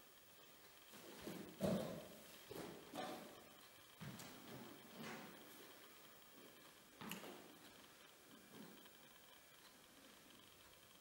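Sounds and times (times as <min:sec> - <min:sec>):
bare feet thudding on floor: 0:01.2 - 0:03.3, 0:04.0 - 0:05.1.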